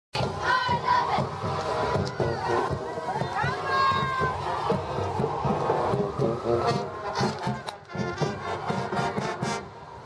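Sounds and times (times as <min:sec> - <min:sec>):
group chanting and shouting a cheer: 0:00.2 - 0:07.0
steady low beat: 0:00.2 - 0:09.8.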